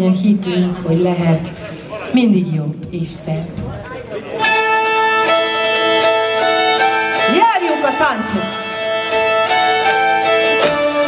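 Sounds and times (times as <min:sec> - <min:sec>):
instrumental music with held notes: 0:04.4 - 0:11.0.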